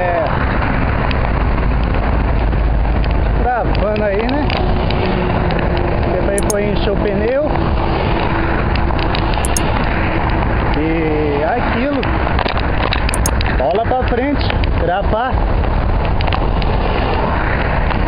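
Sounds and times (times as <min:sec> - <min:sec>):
wind rushing on microphone: 0:00.0 - 0:18.0
highway traffic noise: 0:00.4 - 0:18.0.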